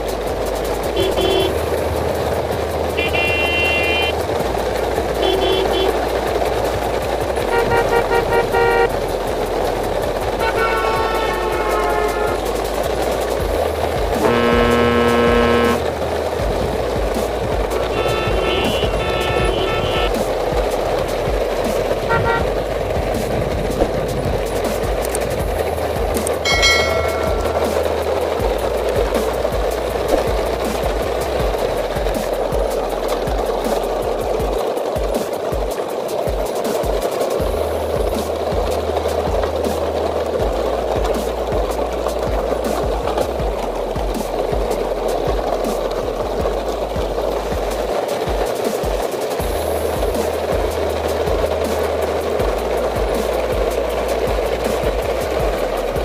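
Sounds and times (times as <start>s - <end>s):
steady rumbling background: 0.0s - 34.5s
vehicle horn honking: 1.0s - 1.6s, 3.0s - 4.1s, 5.2s - 6.0s, 7.5s - 8.9s, 10.4s - 12.4s, 14.2s - 15.9s, 17.8s - 20.1s, 22.1s - 22.5s.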